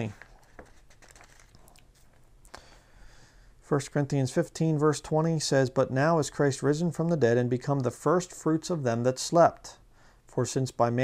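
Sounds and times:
thin pages rustling: 0.0s - 2.4s.

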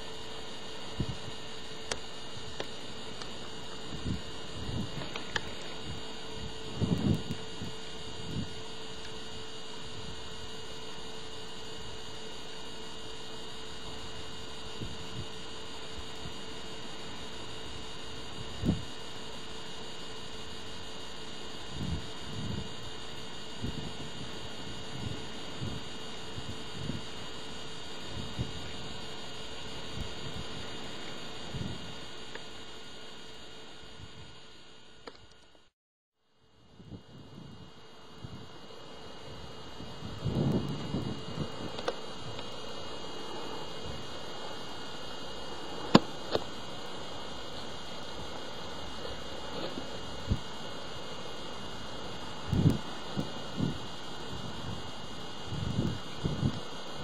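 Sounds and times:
camcorder hum and hiss: 0.0s - 57.0s.

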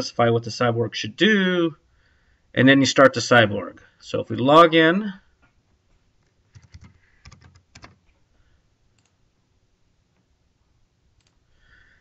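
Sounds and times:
typing on a keyboard: 6.5s - 8.0s.

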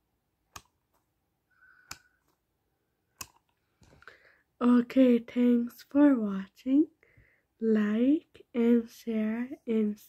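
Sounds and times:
sharp clicks: 0.5s - 0.8s, 3.2s - 3.5s.

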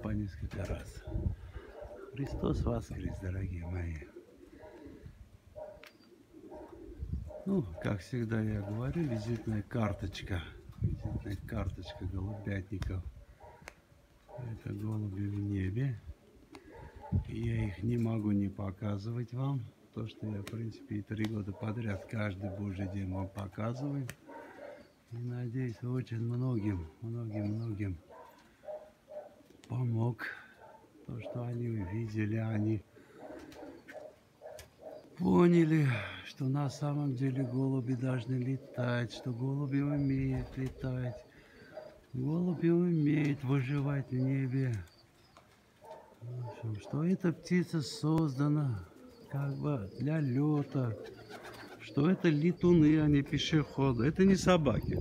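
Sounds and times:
pigeons cooing faintly: 0.0s - 55.0s.

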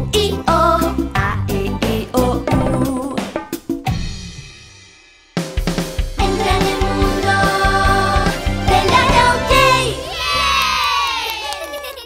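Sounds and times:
children cheering and shouting: 8.8s - 12.0s.

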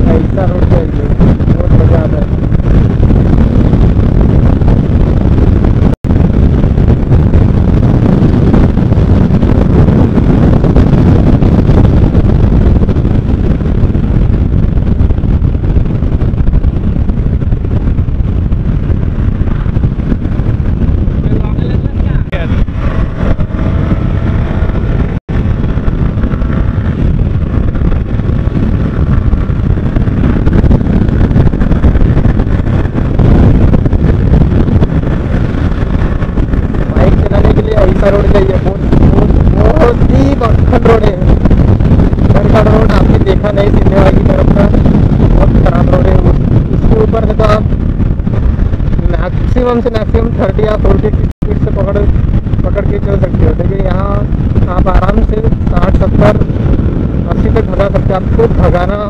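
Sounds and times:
motorcycle engine: 0.0s - 49.5s
wind buffeting microphone: 0.0s - 59.0s.

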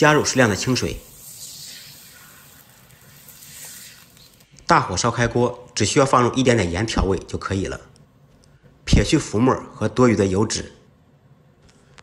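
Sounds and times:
water sizzling in hot oil: 0.0s - 4.4s.

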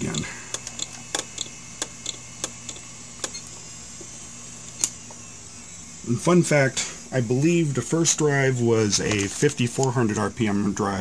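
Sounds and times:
hard drive motor hum: 0.0s - 11.0s
hard drive head clicks: 0.5s - 3.5s.

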